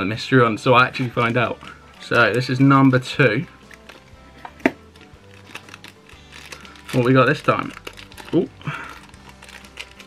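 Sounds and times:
plastic bag crinkling: 4.8 - 10.0.

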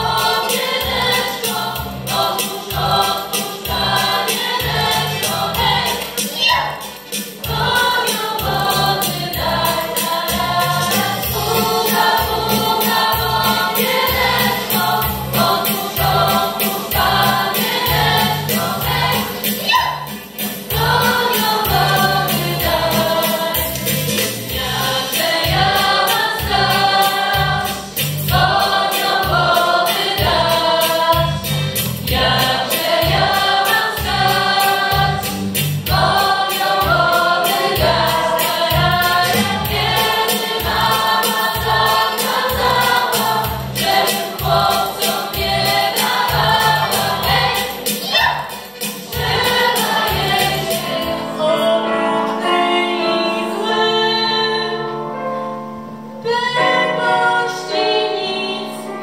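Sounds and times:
female vocal group singing in harmony: 0.0 - 55.5, 56.2 - 59.0.

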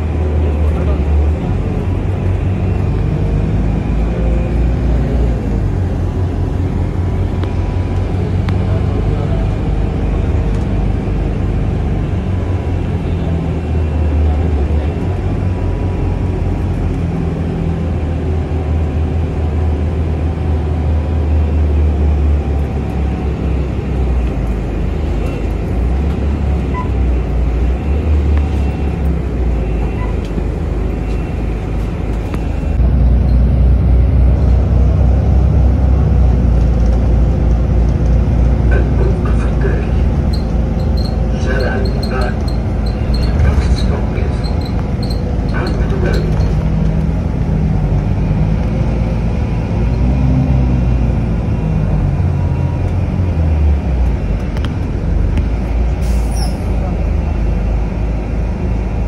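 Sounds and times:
bus engine rumble: 0.0 - 59.0.

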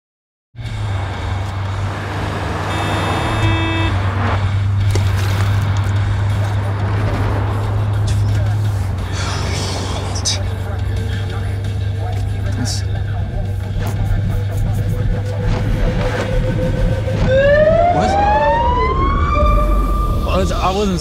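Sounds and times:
car engine and road noise: 0.6 - 21.0.

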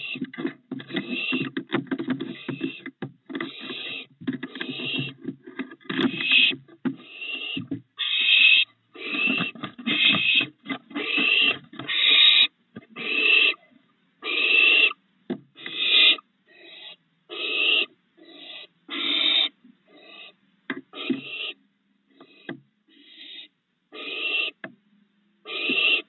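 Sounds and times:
owlets rasping begging calls: 6.0 - 13.6, 15.6 - 21.6, 22.2 - 24.6, 25.5 - 26.0.

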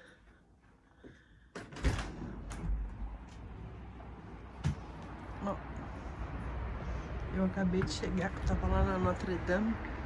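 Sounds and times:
low hum of city: 0.0 - 10.0.

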